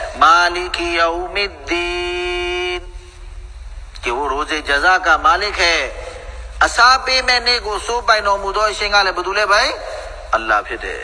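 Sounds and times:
man chanting: 0.0s - 3.2s, 4.0s - 11.0s.

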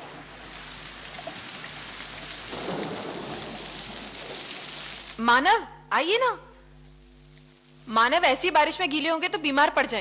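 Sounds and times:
heavy rain pouring: 0.0s - 5.2s
low rolling thunder: 2.4s - 4.6s.

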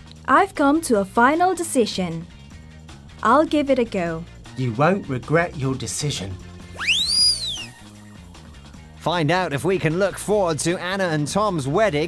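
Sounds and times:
quiet background music: 0.0s - 12.0s
whistle-like pitch glide effect: 6.8s - 7.8s.

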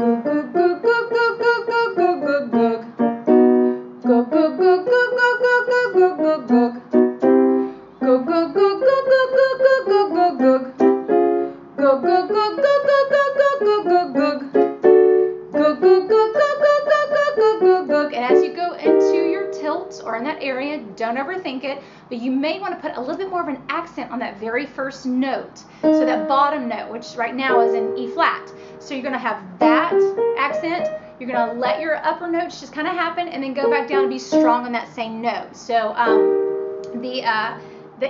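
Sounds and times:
woman singing vocal scale: 0.0s - 7.1s, 7.9s - 14.9s, 15.5s - 21.8s, 25.5s - 35.0s, 35.8s - 38.0s
piano accompaniment: 0.0s - 21.4s, 25.8s - 32.5s, 33.4s - 34.9s, 36.0s - 38.0s.

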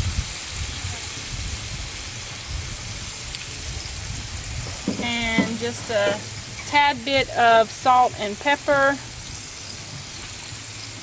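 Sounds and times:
burger patties sizzling on griddle: 0.0s - 11.0s.

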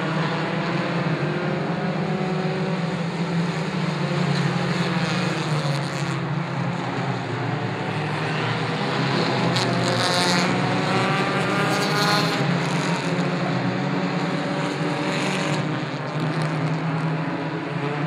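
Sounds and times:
race car engines droning: 0.0s - 18.0s.

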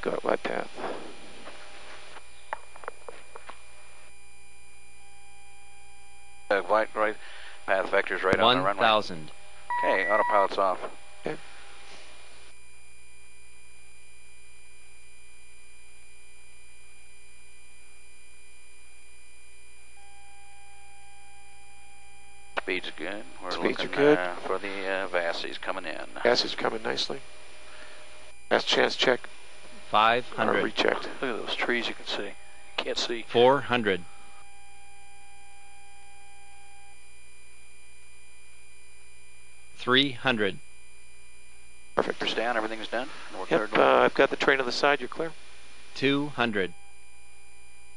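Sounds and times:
faint steady tones: 0.0s - 47.9s
steady electrical hum: 0.0s - 47.9s
low hiss: 19.9s - 35.3s, 42.0s - 47.0s.

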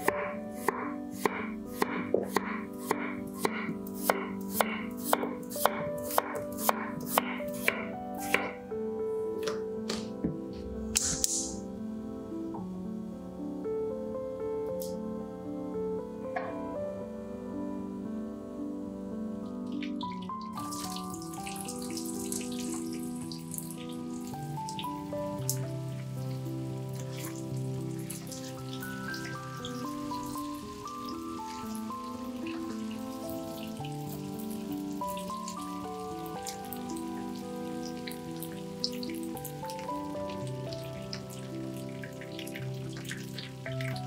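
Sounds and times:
background music: 0.0s - 44.0s.

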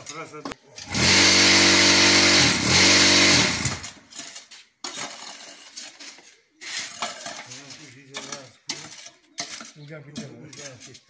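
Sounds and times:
vibrator motor buzzing: 0.9s - 3.8s
metal scraper scraping and knocking: 3.7s - 11.0s.

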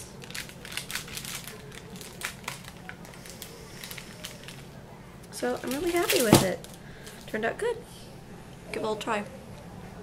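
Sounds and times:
paper crinkling clicks: 0.2s - 4.7s, 5.5s - 7.2s.

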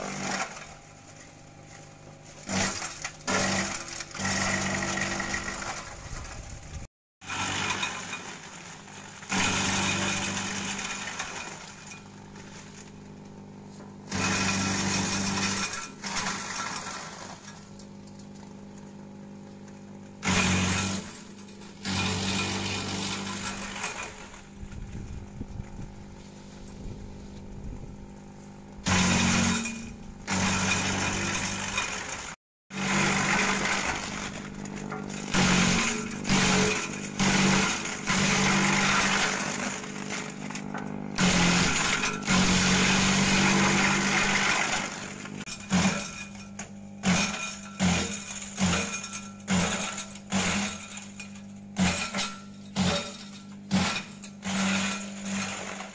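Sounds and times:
shredder motor humming: 0.0s - 55.9s.

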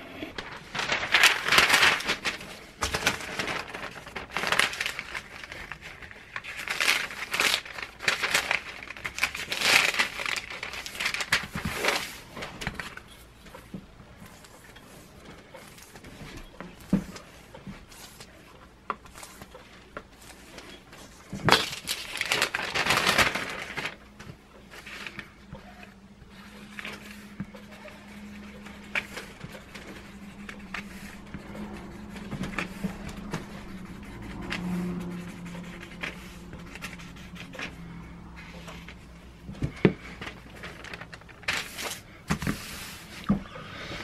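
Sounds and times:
paper rustling: 0.3s - 43.4s.

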